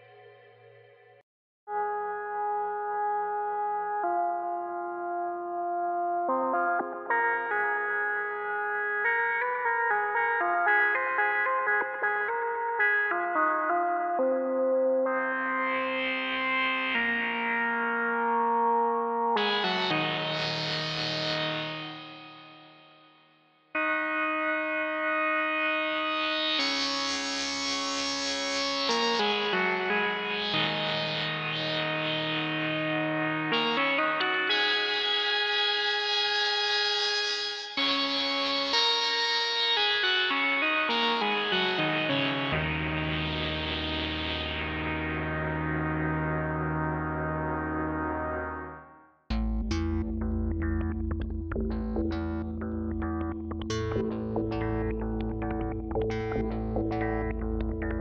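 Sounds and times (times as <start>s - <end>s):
synthesizer sustained chords: 1.7s - 22.4s, 23.8s - 58.0s.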